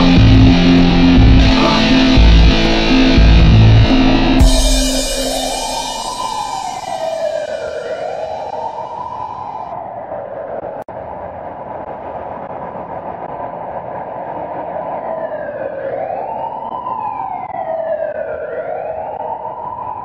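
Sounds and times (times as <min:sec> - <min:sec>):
siren wailing: 0:00.0 - 0:10.7, 0:14.9 - 0:20.0
steady rushing noise: 0:00.0 - 0:16.6.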